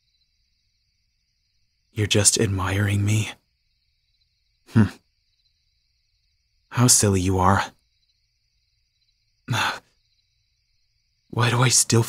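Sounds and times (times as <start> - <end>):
man sighing: 4.7 - 5.0.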